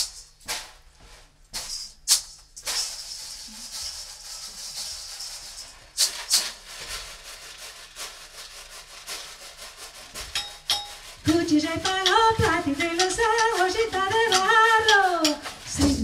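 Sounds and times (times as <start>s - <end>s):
contents rattling in a bowl: 1.6s - 16.0s
strikes on a bowl: 10.2s - 15.5s.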